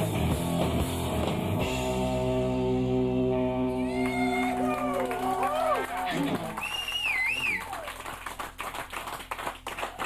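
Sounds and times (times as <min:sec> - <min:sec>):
live rock song: 0:00.0 - 0:02.6
high whoop: 0:03.7 - 0:08.0
audience clapping and cheering: 0:03.7 - 0:10.0.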